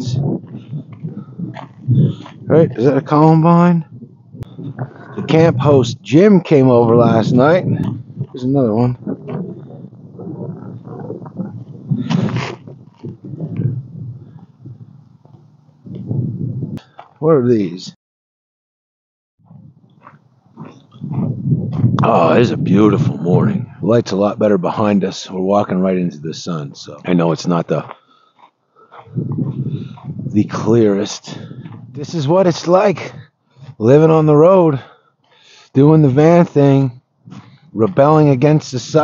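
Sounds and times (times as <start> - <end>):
microphone handling bumps: 0.0 - 6.0, 6.8 - 17.2, 19.4 - 23.9, 28.9 - 32.1, 37.2 - 38.2.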